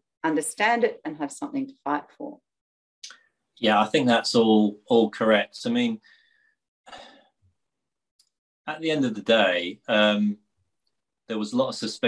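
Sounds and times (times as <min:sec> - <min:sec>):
person breathing softly: 0:06.0 - 0:07.3.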